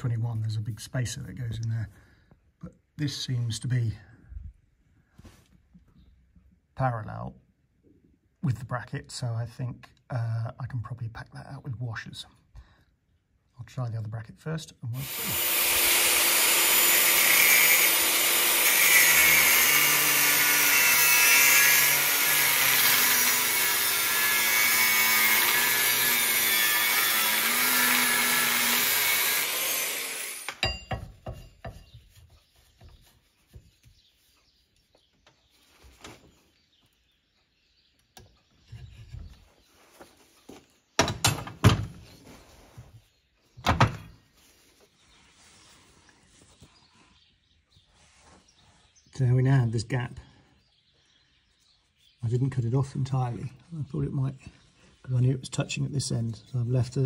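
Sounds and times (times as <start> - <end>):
angle grinder cutting steel: 15.0 - 30.9
metal clanks and knocks: 30.6 - 31.9, 41.0 - 42.0.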